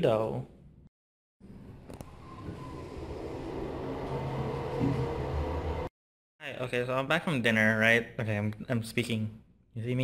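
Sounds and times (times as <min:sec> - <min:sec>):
elevator rumble and hum: 0:02.1 - 0:05.9.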